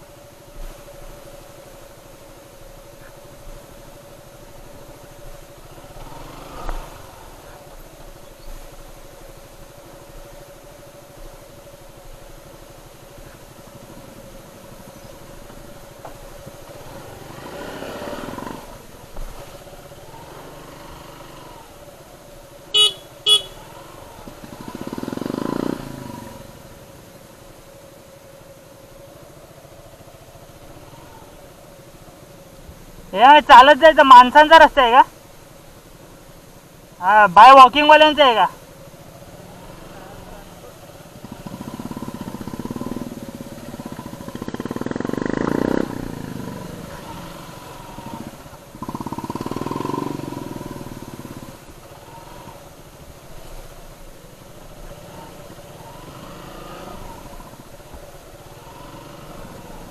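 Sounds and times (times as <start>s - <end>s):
motorcycle engine running: 0.0s - 59.9s
motorcycle horn tooting: 22.7s - 23.9s.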